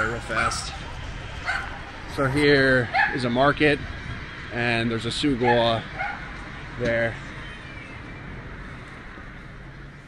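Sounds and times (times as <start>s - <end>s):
urban background hum: 0.0s - 10.0s.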